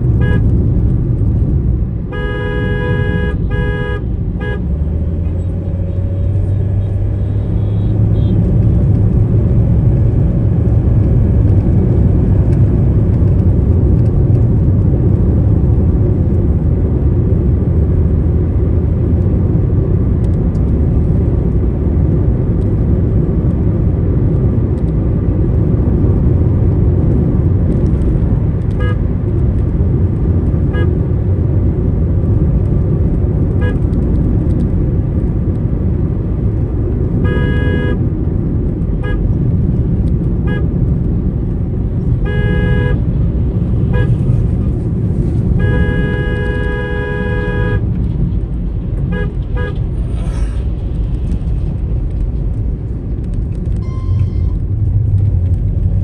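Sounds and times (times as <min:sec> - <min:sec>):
road and engine rumble inside car: 0:00.0 - 0:56.0
vehicle horns: 0:00.1 - 0:00.6, 0:02.0 - 0:04.8, 0:06.8 - 0:08.5, 0:28.7 - 0:29.1, 0:30.7 - 0:31.0, 0:33.6 - 0:33.9, 0:37.1 - 0:38.0, 0:38.9 - 0:39.3, 0:40.4 - 0:40.7, 0:42.1 - 0:43.1, 0:43.8 - 0:44.5, 0:45.4 - 0:48.0, 0:49.0 - 0:50.0, 0:53.8 - 0:54.6.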